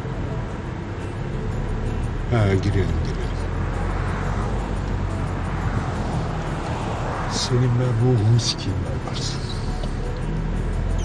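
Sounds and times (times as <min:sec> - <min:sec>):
car engine hum: 0:00.0 - 0:11.0
road noise: 0:00.0 - 0:11.0.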